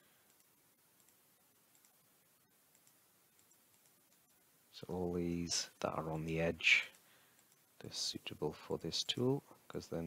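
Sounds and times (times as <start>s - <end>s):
computer mouse clicks: 0.2s - 2.0s, 2.6s - 4.4s, 6.8s - 7.7s.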